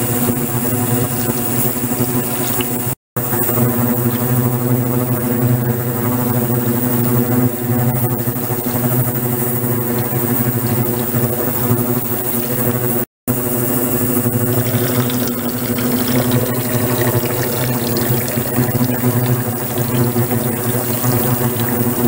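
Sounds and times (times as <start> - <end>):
low machine hum: 0.0 - 22.0
churning water rushing: 14.4 - 22.0.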